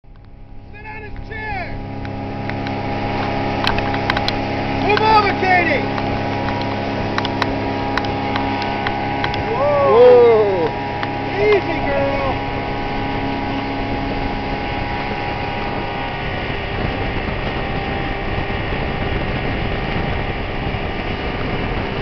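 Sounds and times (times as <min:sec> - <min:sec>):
outboard motor running: 0:00.1 - 0:22.0
wind and spray rushing: 0:00.3 - 0:22.0
people calling out: 0:09.4 - 0:10.8.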